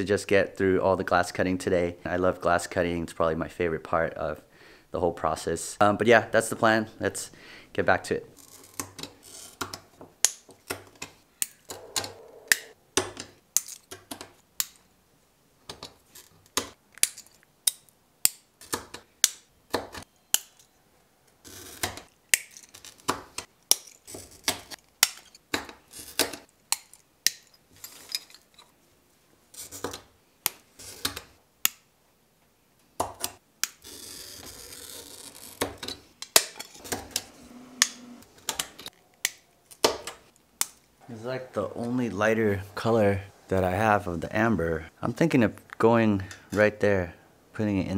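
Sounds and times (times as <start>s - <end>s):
glass cutter scoring glass: 33.6s - 39.4s.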